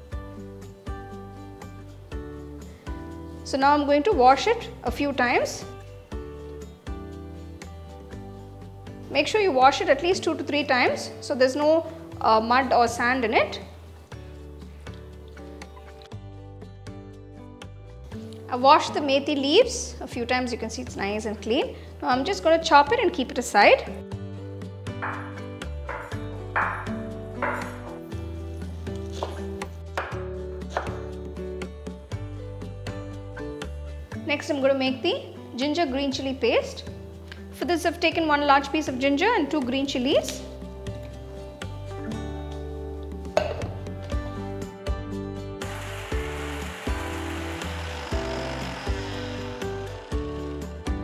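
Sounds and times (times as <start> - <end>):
background music sustained tones: 0.0 - 51.0
knife chopping on wooden board: 25.9 - 27.9
mixer grinder grinding: 45.6 - 51.0.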